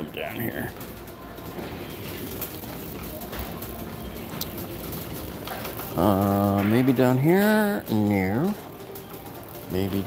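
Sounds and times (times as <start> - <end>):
shopping cart rolling: 0.0 - 10.0
store background noise: 0.0 - 10.0.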